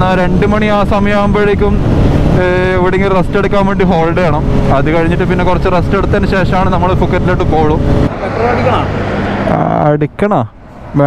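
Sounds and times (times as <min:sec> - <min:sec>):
people talking: 0:00.0 - 0:01.8, 0:02.4 - 0:08.9, 0:09.5 - 0:11.0
man speaking: 0:02.4 - 0:11.0.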